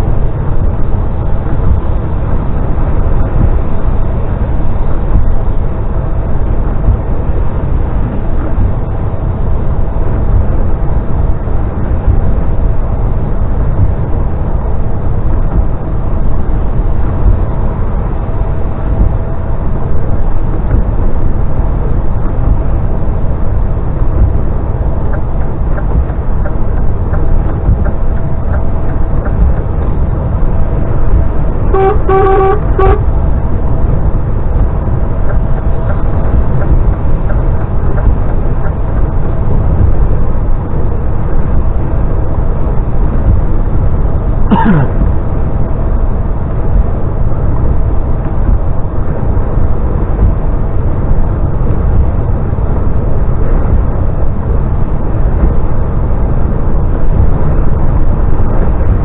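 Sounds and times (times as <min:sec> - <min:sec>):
road and engine noise in cab: 0:00.0 - 0:59.0.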